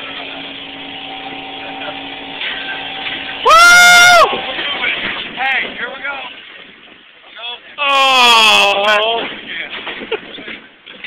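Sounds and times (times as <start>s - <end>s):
ride humming: 0.0s - 8.1s
person shouting whoo: 3.4s - 4.3s, 7.8s - 9.2s.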